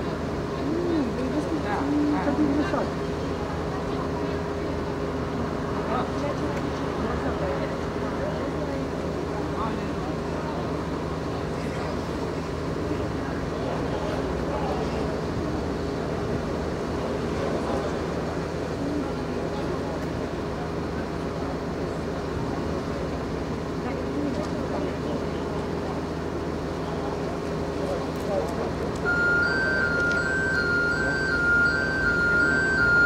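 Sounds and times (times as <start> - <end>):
diesel engine droning: 0.0 - 33.0.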